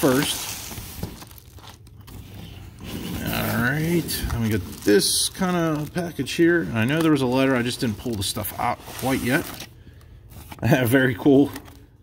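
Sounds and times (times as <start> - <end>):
plastic crinkling against cardboard: 0.0 - 9.7.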